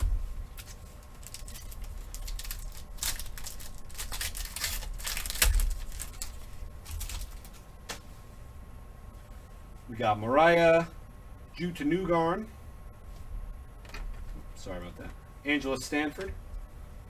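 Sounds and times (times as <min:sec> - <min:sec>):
cards clicking and rustling in sleeves: 0:00.5 - 0:08.0.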